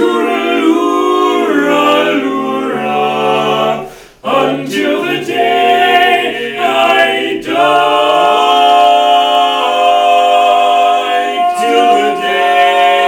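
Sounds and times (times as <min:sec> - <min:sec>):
men singing in close harmony: 0:00.0 - 0:13.0.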